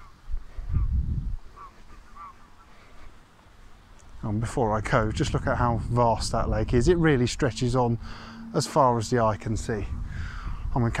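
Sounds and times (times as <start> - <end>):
geese honking: 0.0 - 3.2.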